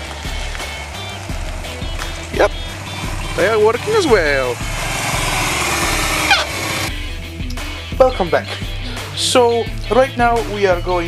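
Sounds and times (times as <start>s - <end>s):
motorcycle engine passing by: 0.0s - 7.0s.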